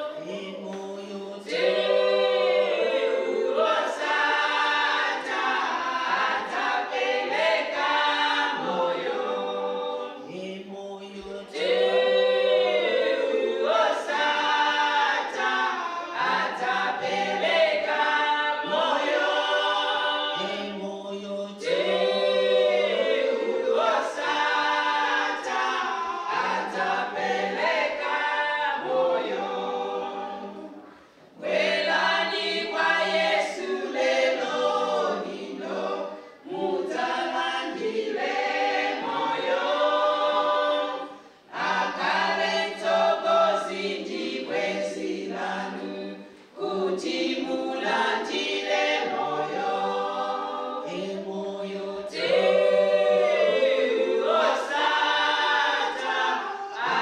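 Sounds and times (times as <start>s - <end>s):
women singing a cappella: 0.0s - 57.0s.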